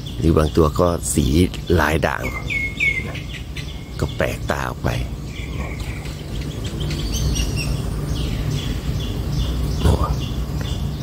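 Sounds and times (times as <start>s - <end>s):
bird calling: 0.0s - 11.0s.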